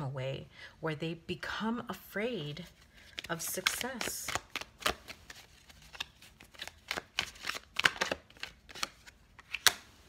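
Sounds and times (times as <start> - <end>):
cards being shuffled: 2.6 - 10.0.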